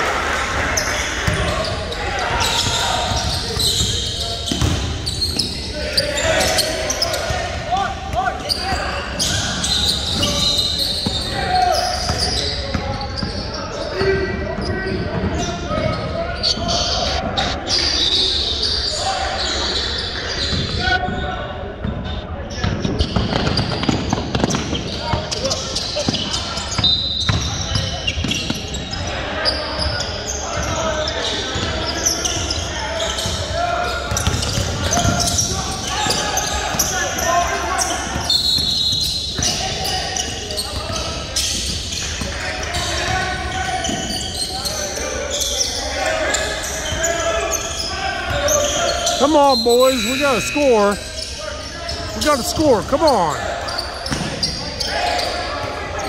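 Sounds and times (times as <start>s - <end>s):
indistinct voices: 49.2s - 51.1s, 52.2s - 53.5s.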